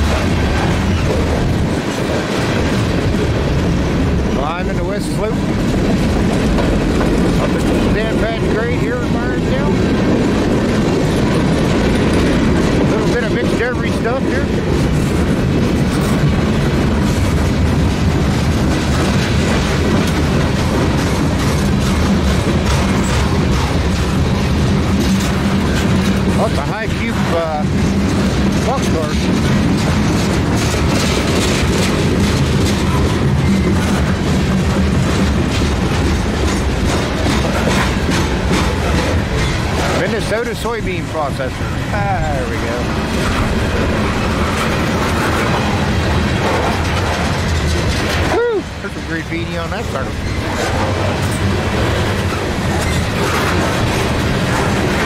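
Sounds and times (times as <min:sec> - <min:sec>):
freight train wheels rumbling on rail: 0:00.0 - 0:55.0.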